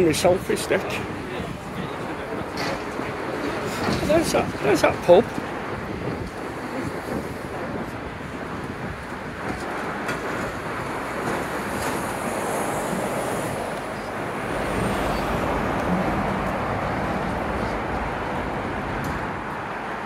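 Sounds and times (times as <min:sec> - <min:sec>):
cars passing on road: 0:00.0 - 0:20.0
deep traffic rumble: 0:00.0 - 0:20.0.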